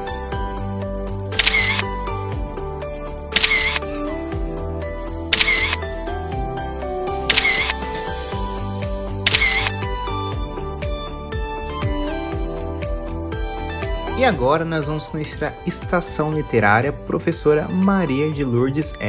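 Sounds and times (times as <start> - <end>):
music with steady beat: 0.0 - 17.1
camera shutter click: 1.4 - 1.9, 3.4 - 3.8, 5.3 - 5.8, 7.3 - 7.8, 9.3 - 9.8.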